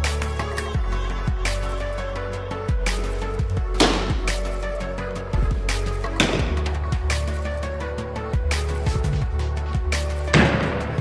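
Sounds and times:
background music with low beat: 0.0s - 11.0s.

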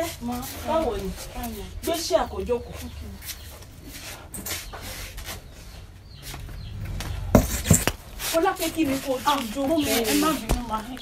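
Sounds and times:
chair scraping and clicking: 6.2s - 8.0s
chair knocking down: 6.9s - 8.0s.

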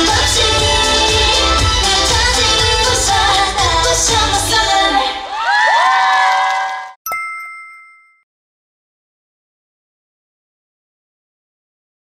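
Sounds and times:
audience cheering and screaming: 5.0s - 7.0s.

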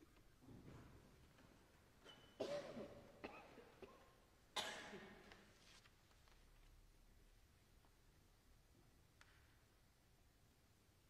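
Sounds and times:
cough in reverberant church: 2.1s - 5.5s.

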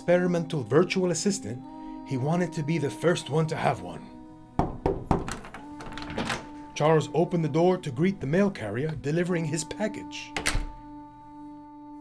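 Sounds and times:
soft background music: 0.0s - 12.0s
knocking on wooden door: 4.6s - 6.0s.

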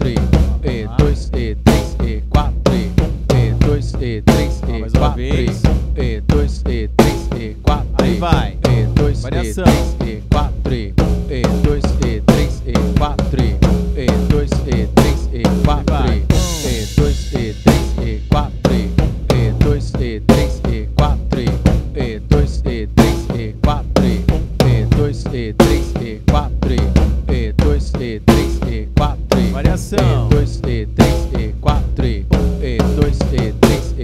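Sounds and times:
bass drum: 0.0s - 34.0s
drum kit playing a tribal groove: 0.0s - 34.0s.

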